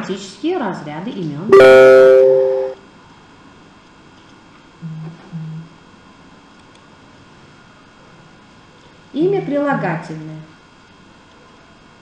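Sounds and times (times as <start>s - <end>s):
ringing notification chime: 1.5s - 2.8s.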